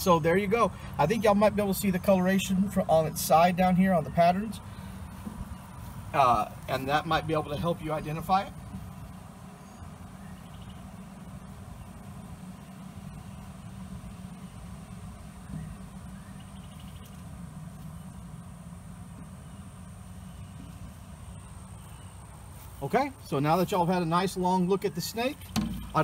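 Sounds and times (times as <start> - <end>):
faint high whine: 0.0 - 26.0
low outdoor rumble: 0.0 - 26.0.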